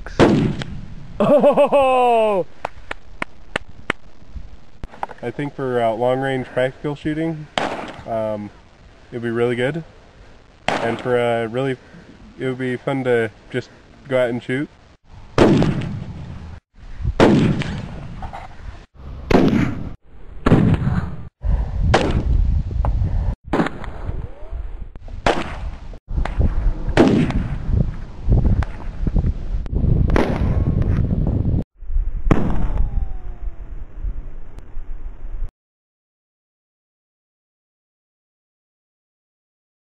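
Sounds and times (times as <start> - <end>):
gunshots with echo: 7.6 - 8.0, 10.7 - 11.1.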